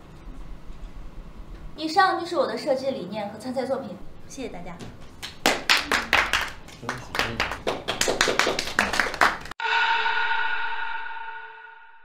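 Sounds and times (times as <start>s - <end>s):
small group clapping: 4.8s - 9.6s.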